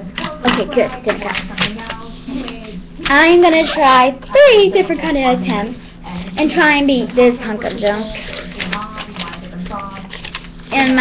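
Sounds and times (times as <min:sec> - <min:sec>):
paper crinkling and rustling: 0:04.8 - 0:11.0.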